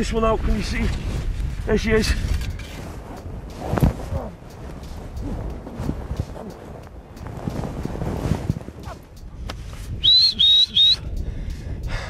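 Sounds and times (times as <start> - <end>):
low rustling: 0.4 - 10.4
person whistling short blasts: 9.9 - 11.1.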